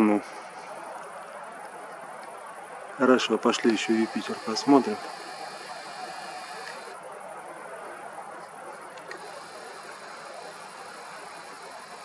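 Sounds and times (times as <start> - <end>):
distant city traffic hum: 0.0 - 12.0.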